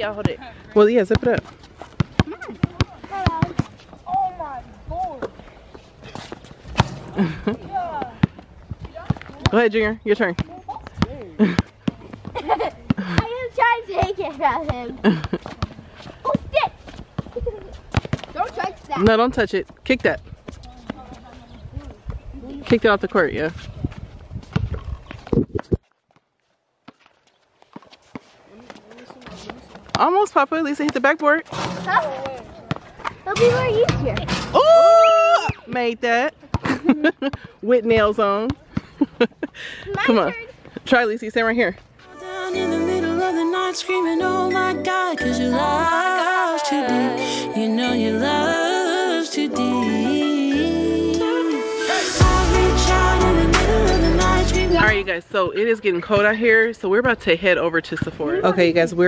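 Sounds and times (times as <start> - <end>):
basketball bouncing on hard court: 1.1 - 4.4, 7.9 - 16.4, 17.2 - 19.2, 30.8 - 34.4
children's voices: 2.3 - 5.4, 12.4 - 15.2, 16.2 - 19.0, 31.7 - 32.6, 33.2 - 34.3.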